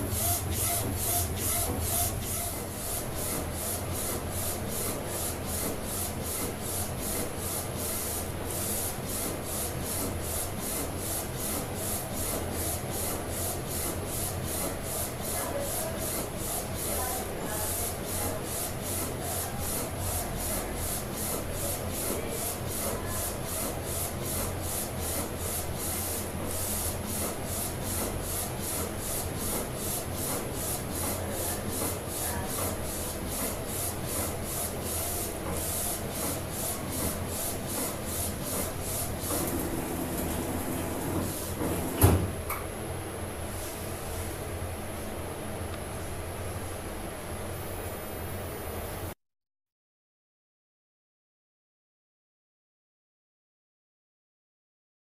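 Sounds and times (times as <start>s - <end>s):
printer carriage pulsing: 0.0s - 3.8s, 34.2s - 42.3s
printer low hum: 0.0s - 42.5s.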